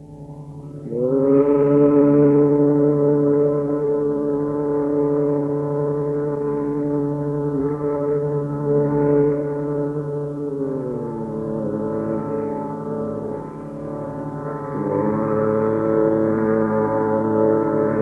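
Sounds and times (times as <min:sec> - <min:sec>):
tanpura drone: 0:00.0 - 0:18.0.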